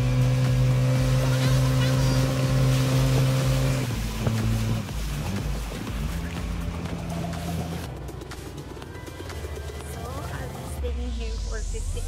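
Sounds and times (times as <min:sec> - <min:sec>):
boat motor droning: 0:00.0 - 0:10.9.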